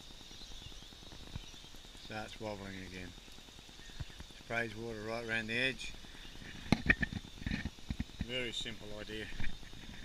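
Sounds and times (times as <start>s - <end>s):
sprinkler head rattling and knocking: 6.4s - 10.0s.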